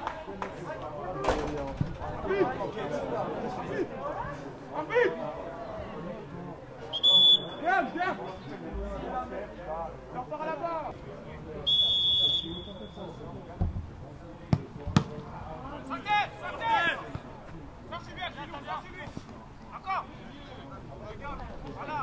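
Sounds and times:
referee's whistle: 0:06.9 - 0:07.7, 0:11.6 - 0:13.2
football being kicked: 0:14.5 - 0:15.3
players shouting: 0:15.5 - 0:17.3.

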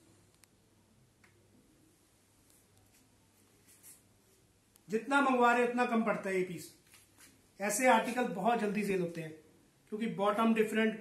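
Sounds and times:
fabric rustling: 0:02.0 - 0:04.5, 0:06.8 - 0:07.5.

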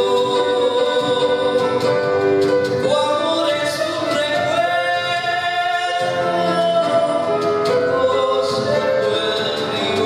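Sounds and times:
piano accompaniment: 0:00.0 - 0:10.0.

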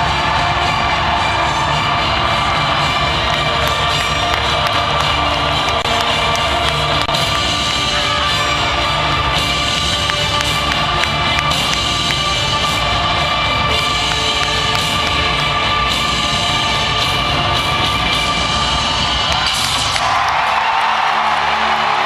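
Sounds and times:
crowd cheering: 0:00.0 - 0:16.2, 0:18.4 - 0:22.0
rock music over sound system: 0:00.0 - 0:20.0.

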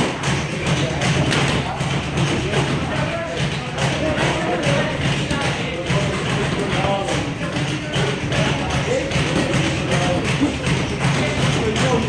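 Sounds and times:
footwork on ring mat: 0:00.0 - 0:12.0.

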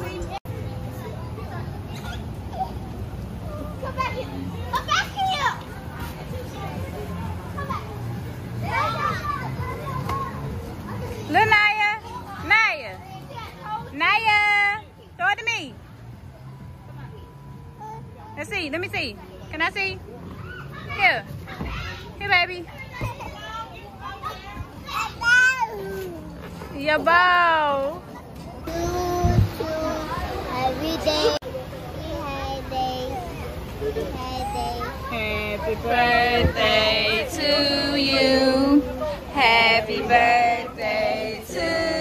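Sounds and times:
child's high-pitched vocal sounds: 0:24.9 - 0:26.3, 0:32.1 - 0:35.1
toddler squealing: 0:34.3 - 0:35.0.

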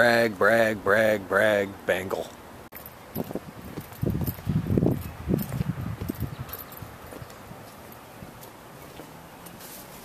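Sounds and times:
footsteps: 0:02.7 - 0:10.0.

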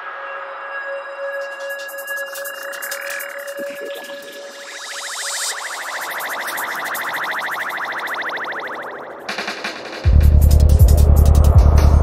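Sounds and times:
synthesizer tone pulsing stutter: 0:01.2 - 0:12.0.

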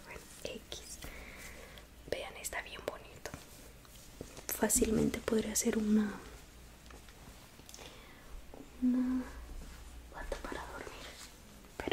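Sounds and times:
woman whispering: 0:00.0 - 0:01.1, 0:02.1 - 0:03.4, 0:08.8 - 0:09.5, 0:10.1 - 0:11.9
steady hum: 0:00.0 - 0:11.9.

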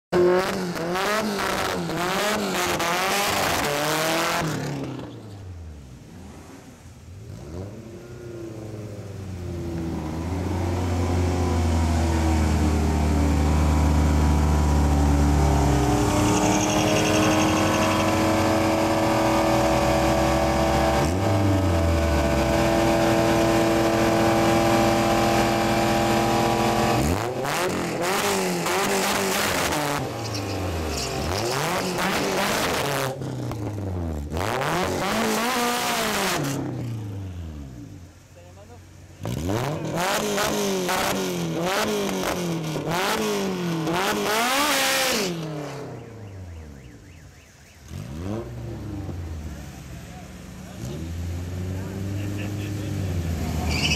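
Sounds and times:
car engine revving: 0:00.1 - 0:53.9
tires spinning on pavement: 0:00.2 - 0:38.1, 0:39.0 - 0:53.9.

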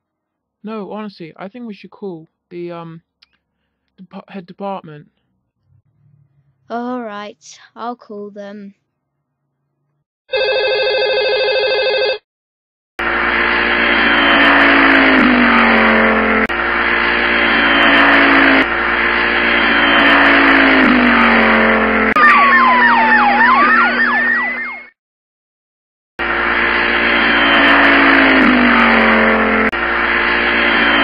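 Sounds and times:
car engine revving: 0:05.6 - 0:06.7, 0:13.0 - 0:24.2, 0:26.2 - 0:31.0
steady electronic tone: 0:13.0 - 0:24.9, 0:26.2 - 0:31.0.

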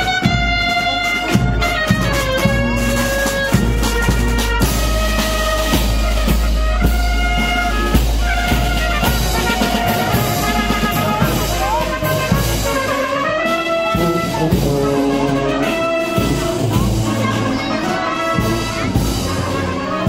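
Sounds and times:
snare and bass drum beat: 0:00.0 - 0:19.7
trumpets: 0:00.0 - 0:20.0.

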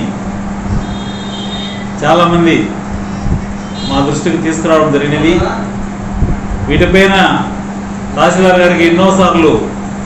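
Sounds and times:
low background hum: 0:00.0 - 0:10.0
man talking: 0:03.8 - 0:05.8.

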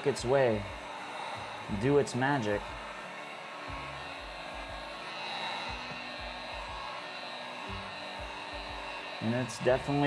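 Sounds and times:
heat gun blowing: 0:00.0 - 0:10.0.

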